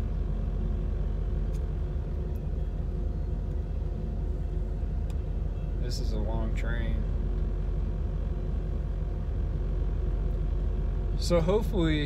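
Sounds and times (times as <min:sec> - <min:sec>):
car engine idling: 0:00.0 - 0:12.0
train passing rumble: 0:00.0 - 0:12.0.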